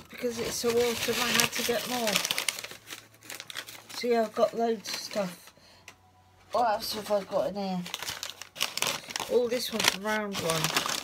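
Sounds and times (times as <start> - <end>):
shopping bag crinkling: 0.0 - 5.4, 6.8 - 11.0.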